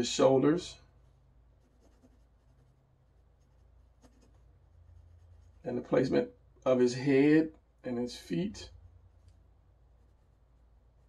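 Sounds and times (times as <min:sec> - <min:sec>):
low steady hum: 0:00.0 - 0:11.0
pencil scratching on paper: 0:01.6 - 0:05.7.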